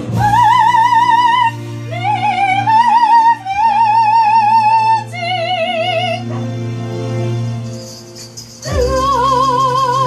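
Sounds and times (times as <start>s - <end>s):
karaoke backing track chord: 0.0s - 10.0s.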